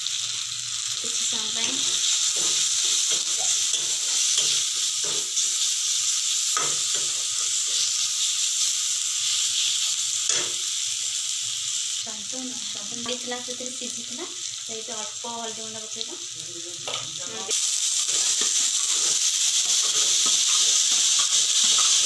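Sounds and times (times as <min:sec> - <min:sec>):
tomatoes sizzling in oil: 0:00.0 - 0:22.0.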